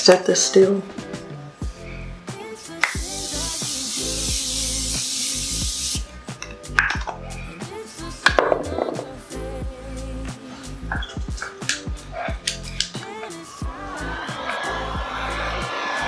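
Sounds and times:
background music with bass: 0.9s - 16.0s
spray hissing: 2.8s - 6.1s.

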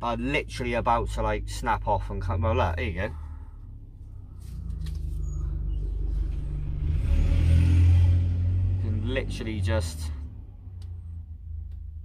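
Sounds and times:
low engine rumble: 0.0s - 12.0s.

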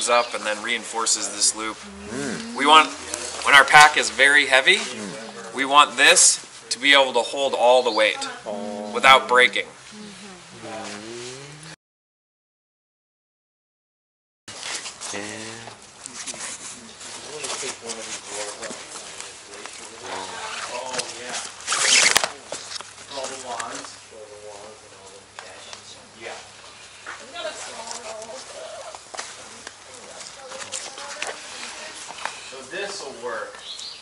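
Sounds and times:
indistinct voices talking: 0.0s - 6.2s, 8.0s - 11.8s
rustling of cord and backpack fabric: 16.0s - 23.8s.

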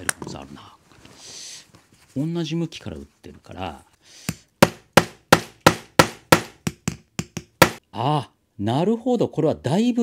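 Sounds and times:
hammer striking metal punch: 4.6s - 7.8s.

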